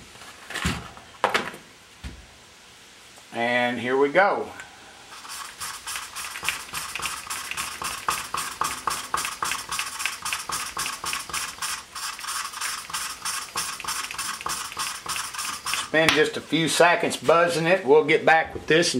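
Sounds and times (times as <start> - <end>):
gritty scraping of valve lapping: 5.1 - 16.0.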